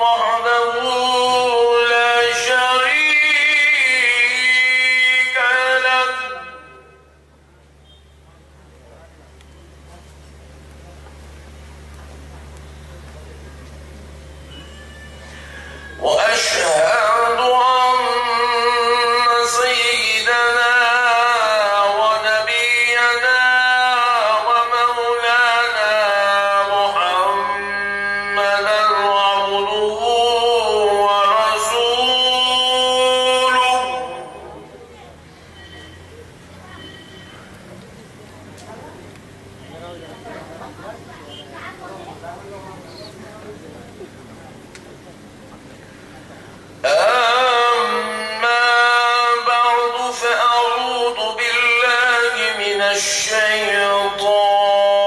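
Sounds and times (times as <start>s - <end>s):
man chanting recitation: 0.0s - 7.1s, 15.8s - 35.0s, 46.8s - 55.0s.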